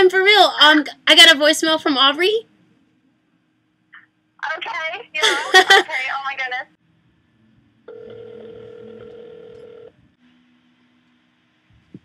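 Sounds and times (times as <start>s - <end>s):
telephone ringback tone: 7.9s - 9.9s.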